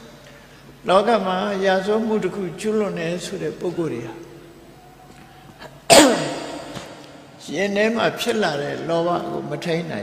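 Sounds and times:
man sneezing or coughing: 5.9 - 7.0.

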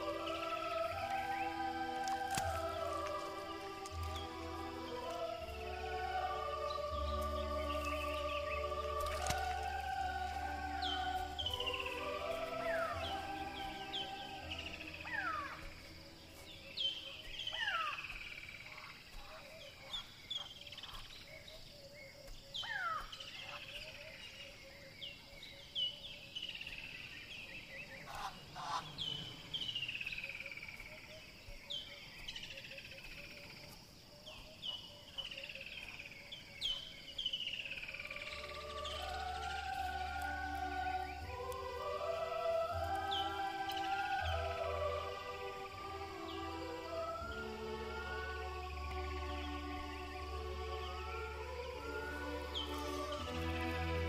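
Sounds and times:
music: 0.0 - 17.6, 38.0 - 54.0
birds whistling downward: 0.0 - 18.4, 38.0 - 54.0.

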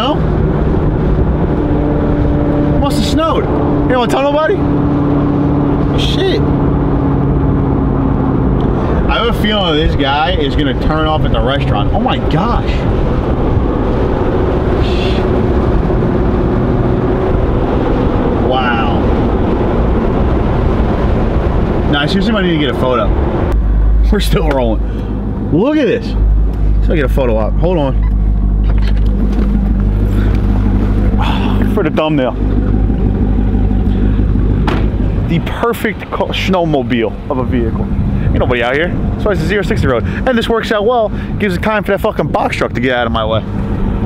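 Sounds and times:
car engine drone: 0.0 - 44.0
tyre road rumble: 0.0 - 44.0.

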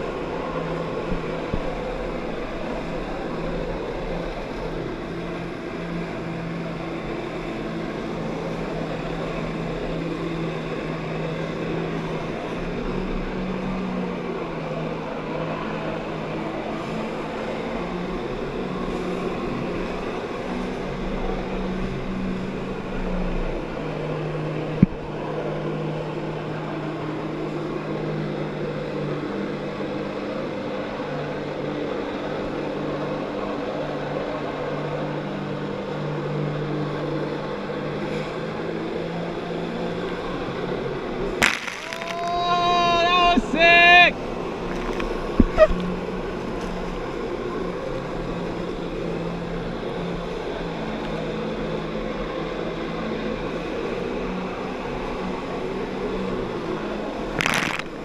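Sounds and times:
jet-ski engine running hard: 0.0 - 58.0
rushing water and spray: 41.3 - 46.0, 54.6 - 58.0.

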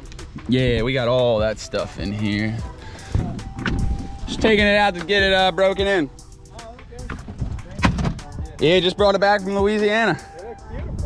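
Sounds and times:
sharp thump: 7.1 - 8.3.

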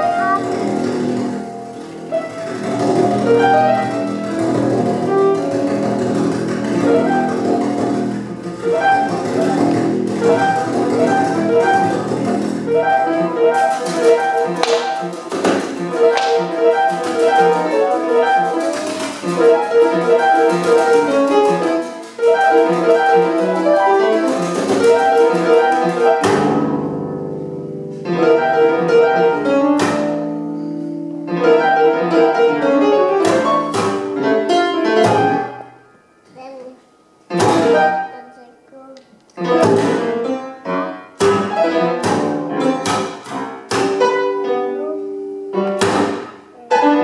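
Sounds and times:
piano notes: 0.0 - 47.0.

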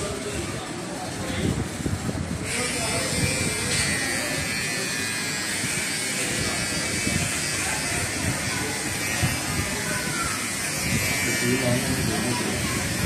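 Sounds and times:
electric hair clipper buzzing: 2.5 - 13.0.

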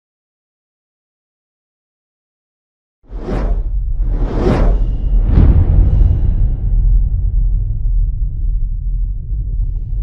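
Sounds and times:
cinematic whoosh: 3.1 - 9.2
deep steady rumble: 3.2 - 10.0.

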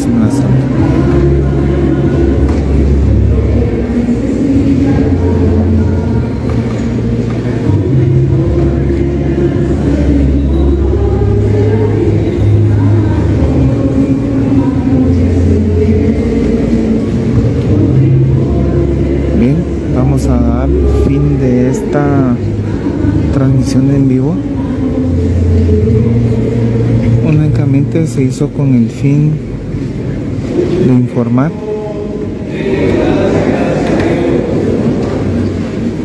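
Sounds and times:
music with low bass notes: 0.0 - 30.6
many people's voices: 0.0 - 36.0.

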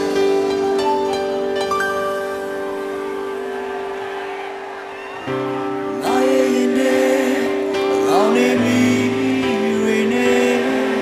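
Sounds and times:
sustained keyboard chord: 0.0 - 3.4.

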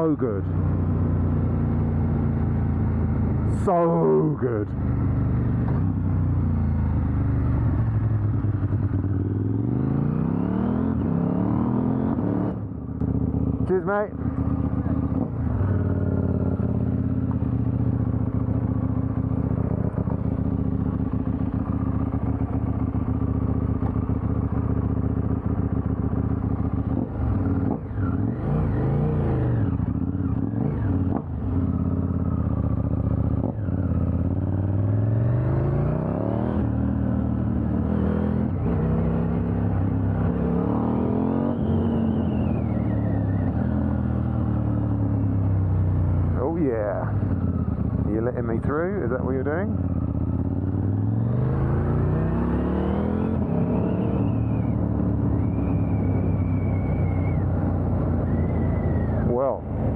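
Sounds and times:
motorcycle engine idling and revving: 0.0 - 59.9.

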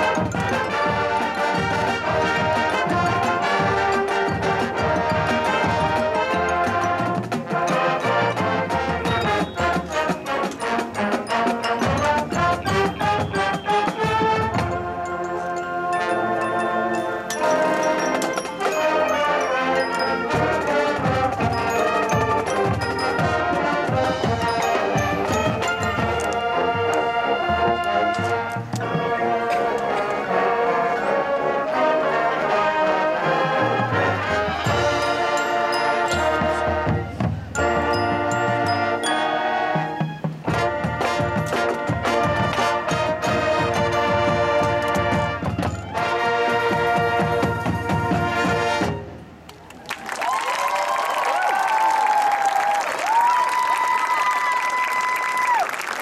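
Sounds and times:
marching band playing: 0.0 - 56.0
crowd applause and cheering: 49.5 - 56.0
long whooping shouts: 50.0 - 55.8.

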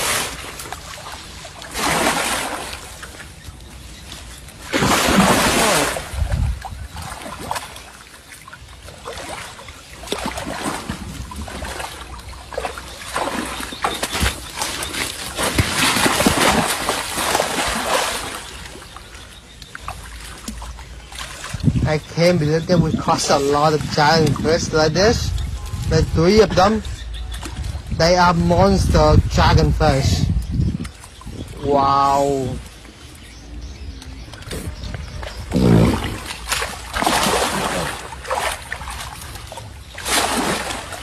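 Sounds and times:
water splashing and sloshing: 0.0 - 41.0.

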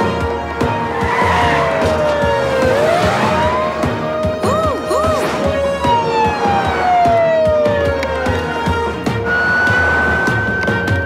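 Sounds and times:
upbeat cartoon chase music: 0.0 - 11.0
cartoon police siren wailing: 0.9 - 10.8.

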